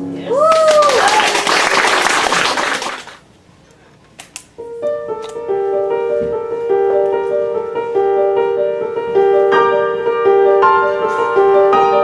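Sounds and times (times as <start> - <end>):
applause: 0.5 - 3.2
upright piano notes: 4.6 - 12.0.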